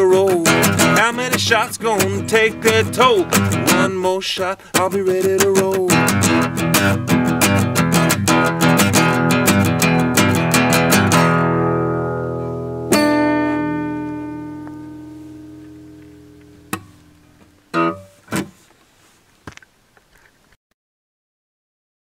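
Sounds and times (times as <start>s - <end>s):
acoustic guitar strumming: 0.0s - 18.6s.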